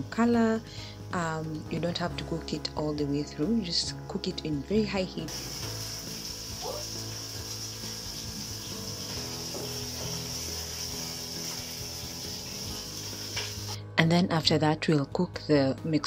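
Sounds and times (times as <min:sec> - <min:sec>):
chicken sizzling in hot oil: 0:05.3 - 0:13.8.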